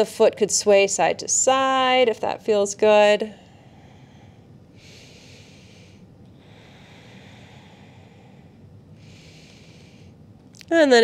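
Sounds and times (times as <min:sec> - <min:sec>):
low room hum: 0:00.0 - 0:11.0
woman breathing slowly: 0:03.2 - 0:10.4.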